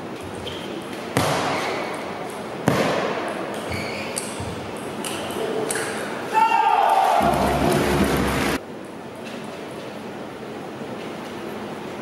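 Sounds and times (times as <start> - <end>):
sports hall hiss: 0.0 - 8.8.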